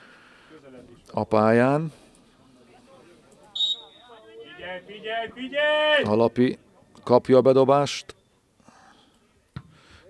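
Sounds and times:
faint distant voices: 0.0 - 10.0
referee's whistle blast: 3.6 - 4.2.

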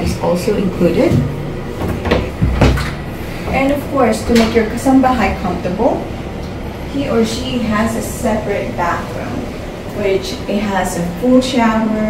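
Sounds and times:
low door thump: 1.1 - 3.0
knocks on wooden door: 2.0 - 2.9.

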